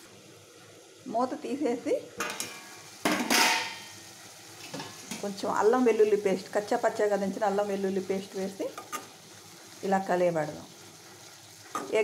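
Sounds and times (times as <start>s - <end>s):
vegetables sizzling in hot oil: 0.0s - 12.0s.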